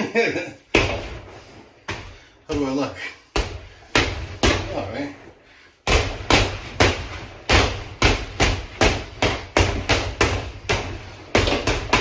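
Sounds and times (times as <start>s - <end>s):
boxing gloves punching heavy bag: 5.9s - 12.0s.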